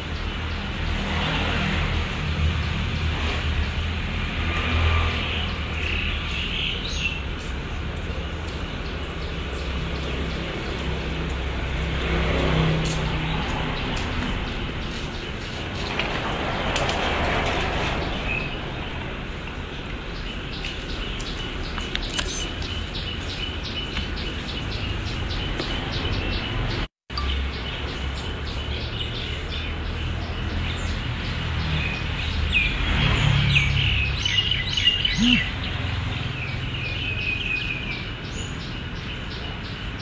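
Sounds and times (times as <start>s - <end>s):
birds chirping: 0.0s - 40.0s
distant traffic rumble: 0.0s - 40.0s.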